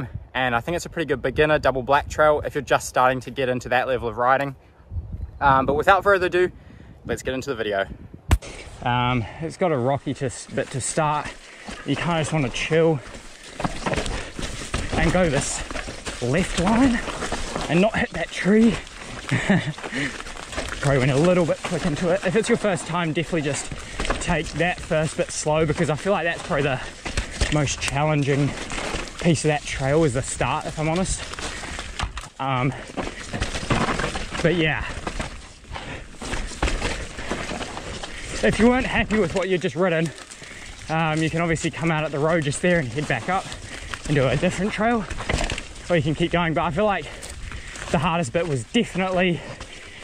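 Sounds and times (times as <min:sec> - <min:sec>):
bike tyres rumbling on dirt: 0:08.3 - 0:50.0
bike knocking and rattling on rocks: 0:10.1 - 0:50.0.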